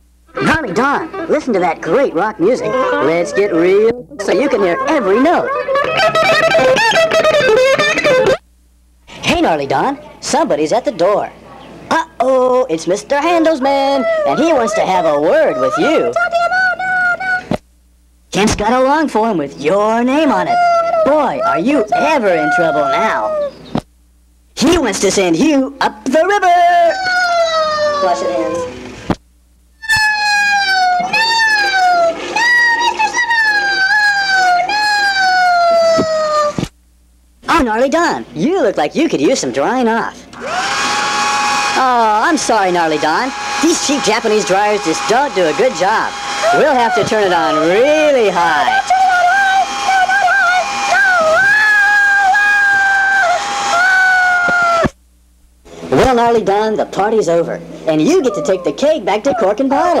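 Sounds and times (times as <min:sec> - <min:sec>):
faint hum: 0:00.0 - 0:40.6, 0:41.8 - 1:00.0
high squeaky voice wailing: 0:02.4 - 0:08.4, 0:13.3 - 0:17.5, 0:19.9 - 0:23.6, 0:26.5 - 0:28.8, 0:29.8 - 0:36.6, 0:41.8 - 0:55.0, 0:58.0 - 1:00.0.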